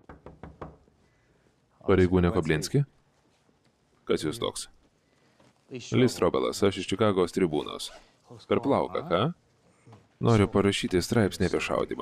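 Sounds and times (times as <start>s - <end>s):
knocking on a door: 0.0s - 0.9s.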